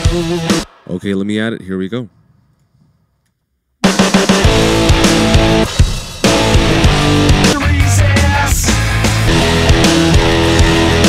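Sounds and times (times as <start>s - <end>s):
drum-heavy rock music: 0.0s - 1.2s, 3.8s - 11.0s.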